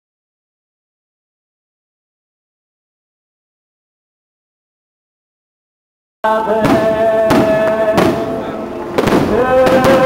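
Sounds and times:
sung chant through loudspeakers: 0:06.2 - 0:10.0.

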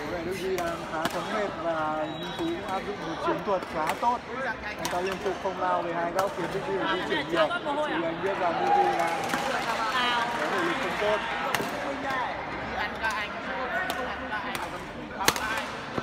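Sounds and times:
voices talking in hall: 0:00.0 - 0:16.0.

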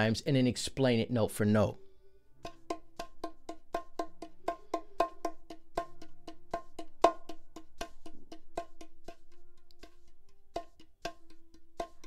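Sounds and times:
bongos played with fingertips: 0:02.4 - 0:12.0.

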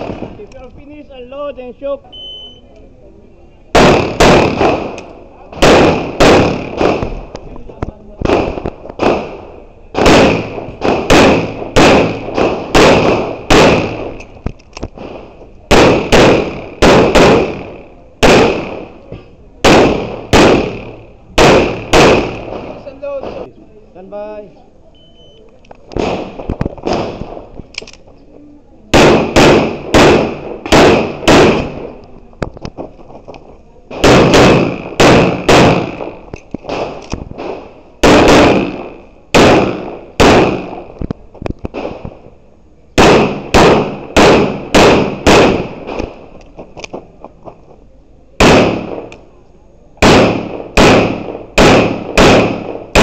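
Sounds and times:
pistol shots: 0:00.0 - 0:00.6, 0:03.7 - 0:07.4, 0:08.2 - 0:23.5, 0:25.9 - 0:28.0, 0:28.9 - 0:32.0, 0:33.9 - 0:41.0, 0:43.0 - 0:47.1, 0:48.4 - 0:49.3, 0:50.0 - 0:53.0.

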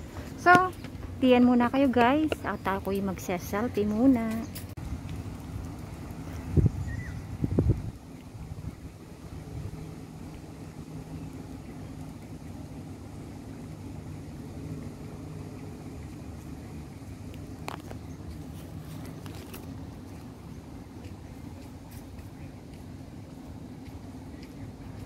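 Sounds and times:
low mechanical hum: 0:00.0 - 0:25.0.

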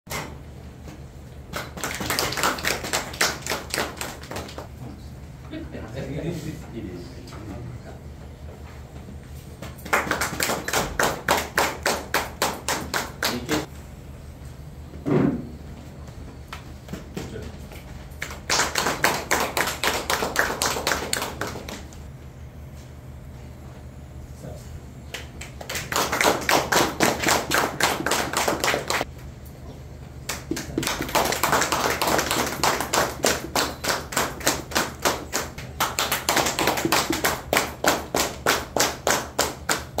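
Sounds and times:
group applauding: 0:01.5 - 0:04.7, 0:09.8 - 0:13.7, 0:18.1 - 0:22.0, 0:25.1 - 0:29.1, 0:30.3 - 0:40.0.

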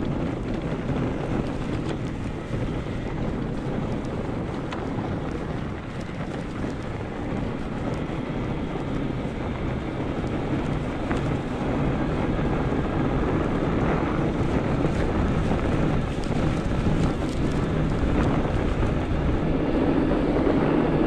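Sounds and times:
tyres rolling over packed snow: 0:00.0 - 0:21.0
wind buffeting microphone: 0:00.0 - 0:21.0.

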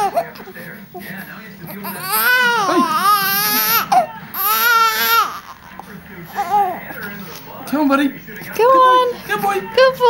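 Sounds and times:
newborn baby crying: 0:01.7 - 0:05.7, 0:06.3 - 0:06.8.

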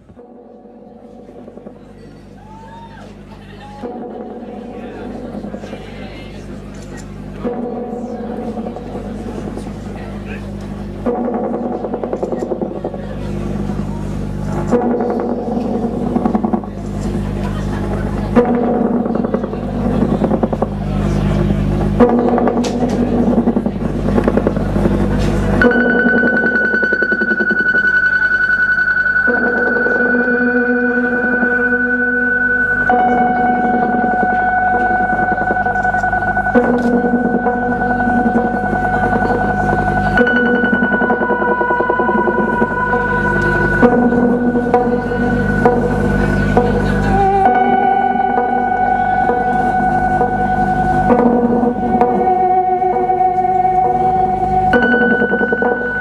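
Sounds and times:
synthesizer drones with buzzing pulse: 0:00.0 - 0:56.0.

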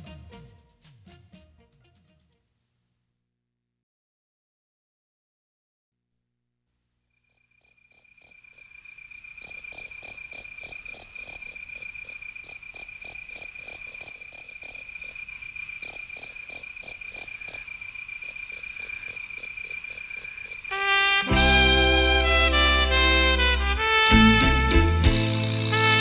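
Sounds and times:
crickets chirping: 0:07.1 - 0:20.9
brass-led music: 0:20.7 - 0:26.0.

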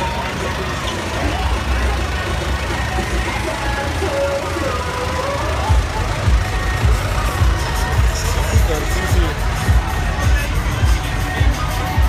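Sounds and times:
crowd voices: 0:00.0 - 0:12.0
tractor engine rumbling: 0:00.0 - 0:12.0.

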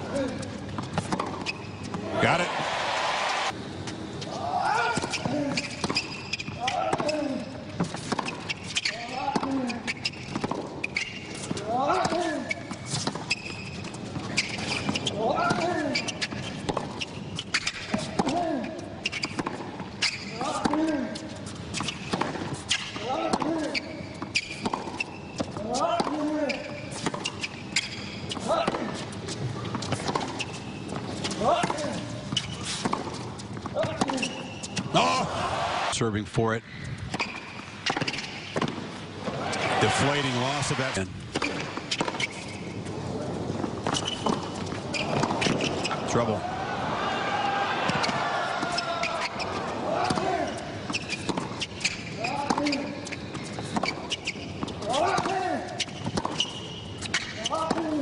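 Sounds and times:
tennis ball bouncing: 0:00.7 - 0:02.1, 0:07.8 - 0:18.4, 0:19.0 - 0:21.0, 0:21.7 - 0:26.3, 0:26.9 - 0:35.0, 0:37.1 - 0:40.6, 0:41.3 - 0:46.0, 0:47.8 - 0:58.0
racket striking tennis ball: 0:37.1 - 0:40.5, 0:41.3 - 0:42.6, 0:50.0 - 0:52.8, 0:56.1 - 0:58.0.

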